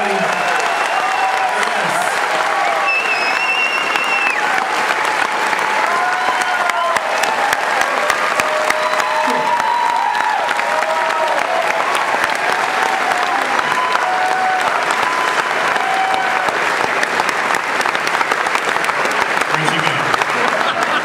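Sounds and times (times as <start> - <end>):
audience applauding: 0.0 - 21.0.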